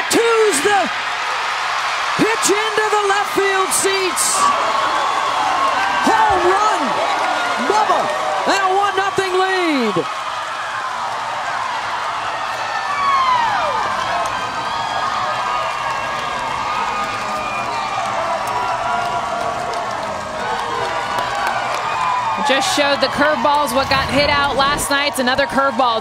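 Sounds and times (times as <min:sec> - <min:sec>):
crowd cheering and applauding: 0:00.0 - 0:26.0.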